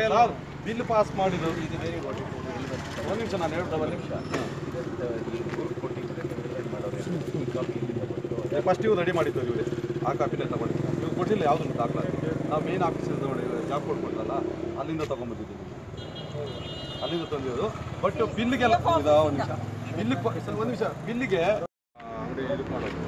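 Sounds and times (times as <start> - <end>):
men talking: 0.0 - 23.0.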